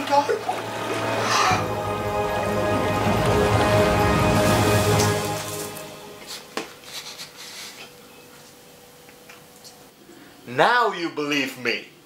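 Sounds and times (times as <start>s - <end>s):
background music of long held tones: 0.0s - 7.2s.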